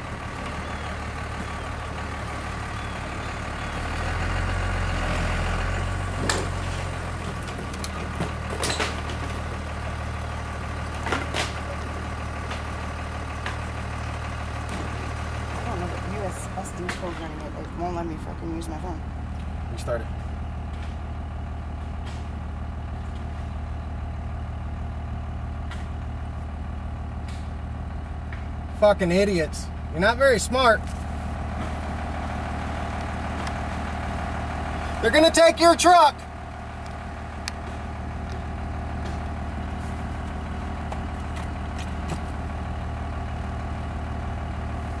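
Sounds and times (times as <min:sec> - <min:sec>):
engine idling: 0:00.0 - 0:45.0.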